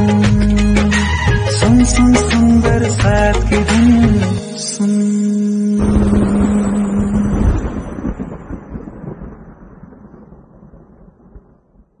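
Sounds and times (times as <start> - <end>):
deep rumble: 5.8 - 12.0
rain: 5.8 - 12.0.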